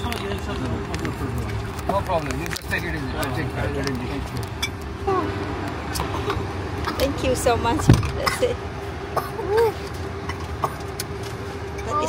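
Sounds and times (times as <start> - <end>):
low car cabin hum: 0.0 - 12.0.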